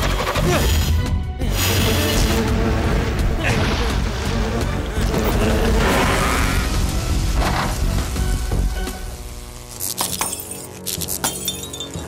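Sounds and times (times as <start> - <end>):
electric buzz with sharp crackles: 3.8 - 12.0.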